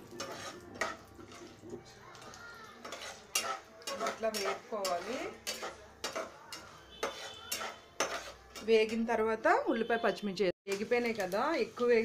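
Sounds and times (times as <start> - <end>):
spoon scraping metal pan: 0.0 - 10.0.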